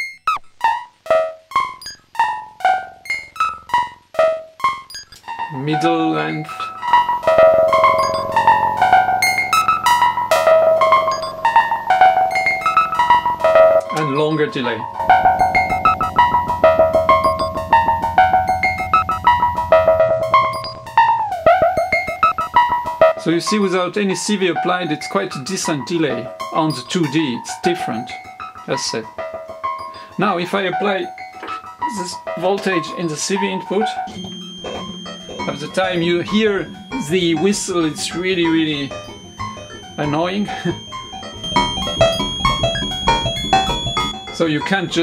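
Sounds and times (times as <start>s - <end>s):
synthesizer plucked notes with delay: 0.2s - 45.0s.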